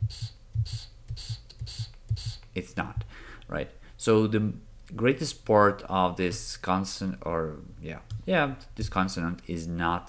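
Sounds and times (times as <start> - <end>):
soft low thumps: 0.0 - 3.1.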